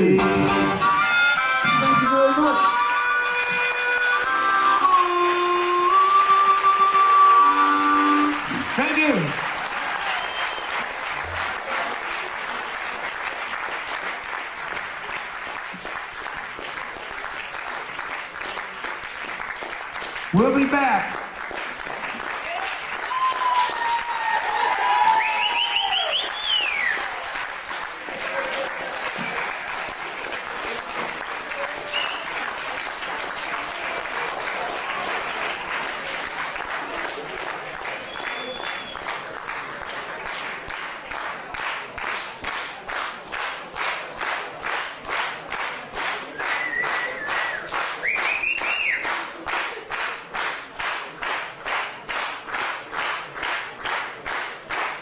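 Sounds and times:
harmonica chord: 0.0s - 8.5s
audience applause: 3.4s - 55.0s
crowd cheering and shouting: 7.1s - 10.6s, 22.4s - 27.2s.

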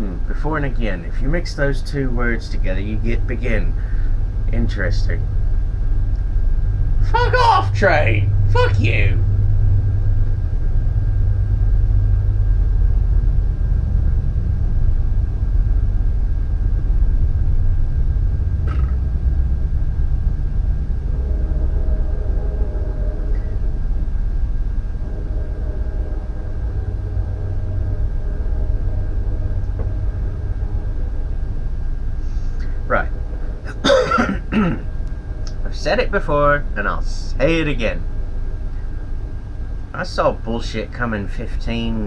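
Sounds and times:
faint high whine: 0.0s - 42.0s
faint humming tones: 0.0s - 42.0s
low rumble: 0.0s - 42.0s.

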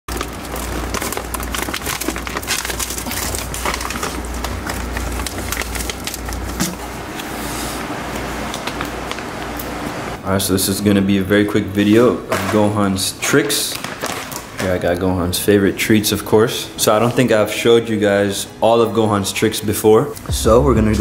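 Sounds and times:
plastic bags crinkling: 0.1s - 7.4s, 12.3s - 15.0s.

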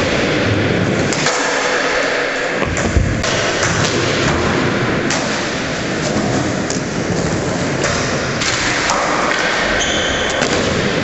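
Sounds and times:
skateboard wheels rolling on concrete: 0.0s - 11.0s
heavy thud: 2.6s - 4.4s.

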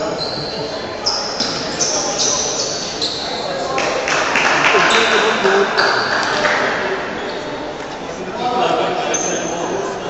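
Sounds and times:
crowd chatter in sports hall: 0.0s - 10.0s.

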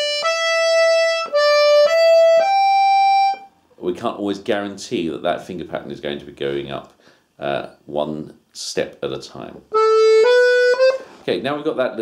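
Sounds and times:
button accordion melody notes: 0.0s - 3.5s, 9.7s - 11.2s.

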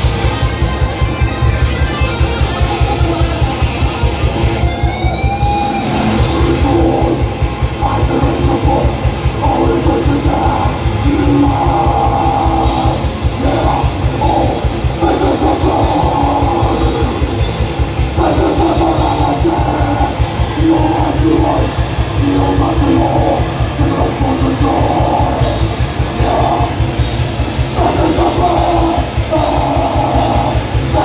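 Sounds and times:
death metal band playing live: 0.0s - 31.0s.

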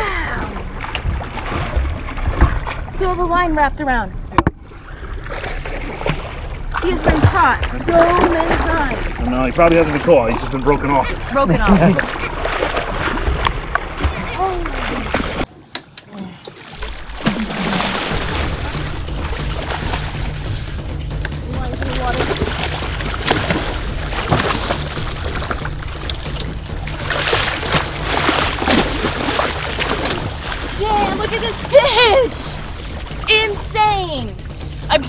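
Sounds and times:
water splashing against boat: 0.0s - 35.0s.

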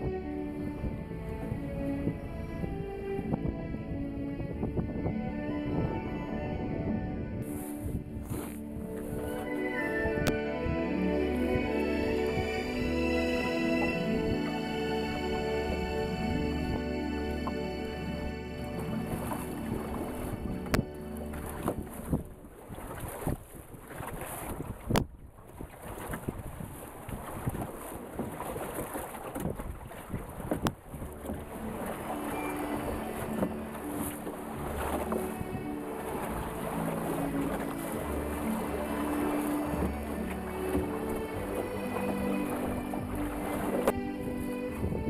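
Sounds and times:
background music: 0.0s - 22.1s, 31.2s - 45.0s
water rushing past hull: 0.0s - 45.0s
wind on microphone: 0.0s - 45.0s.

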